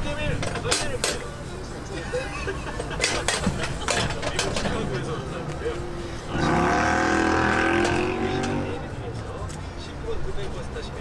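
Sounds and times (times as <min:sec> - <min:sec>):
vehicle passing by: 0:06.2 - 0:09.2.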